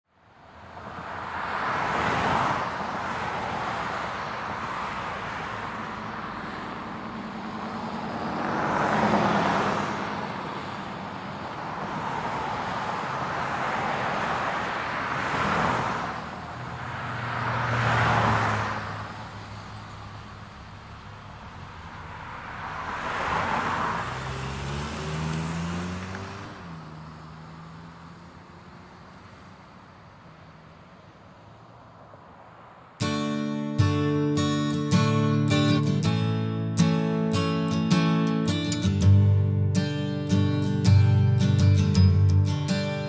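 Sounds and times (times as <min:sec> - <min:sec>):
cars passing: 0:00.1 - 0:43.0.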